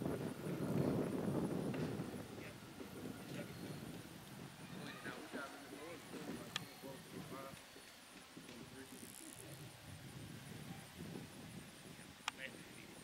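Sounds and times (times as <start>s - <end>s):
distant voices talking: 0.4s - 10.9s.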